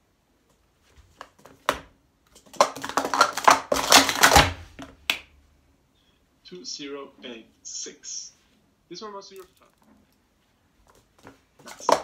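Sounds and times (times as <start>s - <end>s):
plastic cups clattering: 1.2s - 5.0s, 11.6s - 12.0s.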